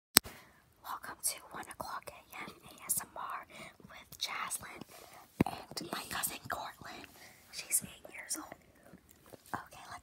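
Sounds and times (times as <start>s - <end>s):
girl whispering: 0.9s - 4.9s, 5.5s - 8.7s.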